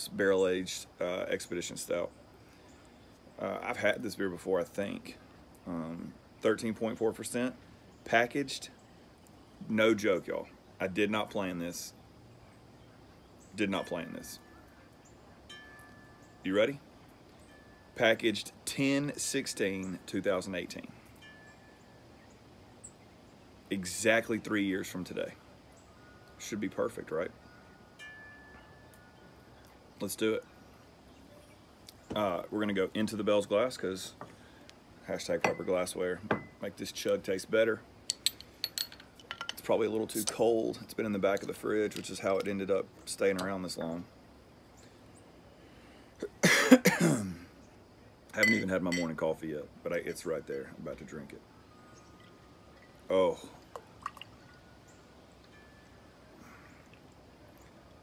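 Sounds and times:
background hiss: 0.0s - 58.0s
faint high ringing tone: 12.4s - 23.1s, 25.6s - 31.6s, 35.2s - 37.1s, 48.4s - 56.8s.

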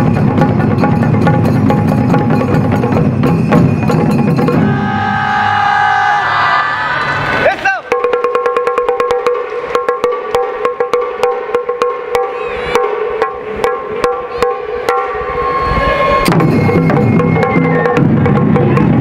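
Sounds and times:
taiko drum strikes: 0.0s - 5.0s, 7.9s - 15.2s, 16.3s - 19.0s
deep drum tones: 0.0s - 5.8s, 16.2s - 19.0s
hand cymbals: 11.2s - 17.8s.

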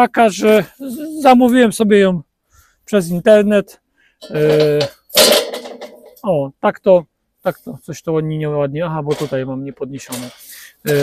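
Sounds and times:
man's drawn-out hesitation sound: 0.0s - 2.3s, 2.9s - 5.0s
breathy hiss: 10.2s - 10.9s.

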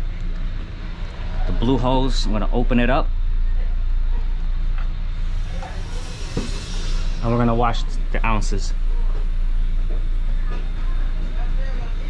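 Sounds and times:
steady low hum: 0.0s - 12.0s
refrigerant hissing through hose: 5.2s - 8.8s.

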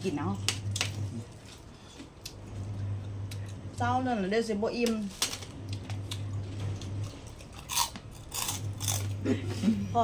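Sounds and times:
crunchy food being chewed: 5.7s - 9.2s.

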